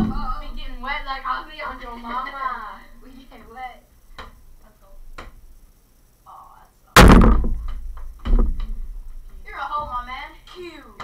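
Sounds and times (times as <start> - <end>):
ball thudding on basketball hoop: 7.0 - 8.9.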